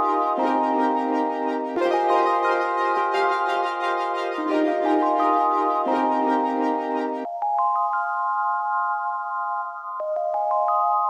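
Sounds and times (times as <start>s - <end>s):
instrumental music chords: 0.0s - 11.0s.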